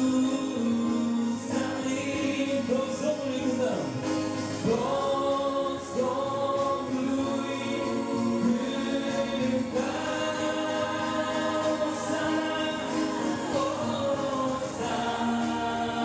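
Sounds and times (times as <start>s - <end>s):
man and woman singing duet: 0.0s - 3.7s, 4.6s - 16.0s
electronic keyboard: 0.0s - 16.0s.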